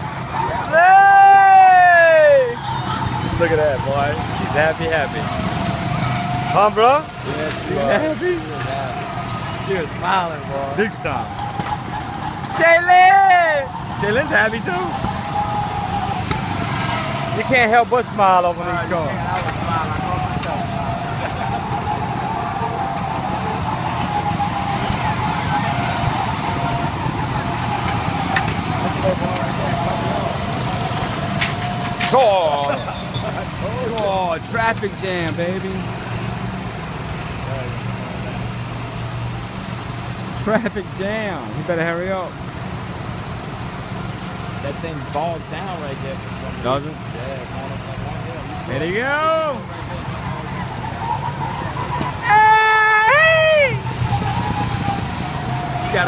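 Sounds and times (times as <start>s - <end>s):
go-kart engines driving by: 0.0s - 56.0s.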